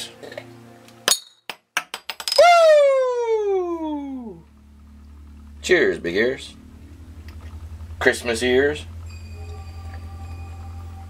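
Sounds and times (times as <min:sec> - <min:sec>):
tone sliding down in pitch: 0:02.8 - 0:11.0.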